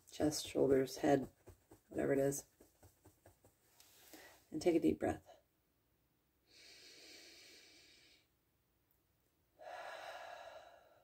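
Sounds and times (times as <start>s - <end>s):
woman breathing deeply: 3.8s - 4.5s, 6.5s - 8.3s, 9.6s - 11.0s.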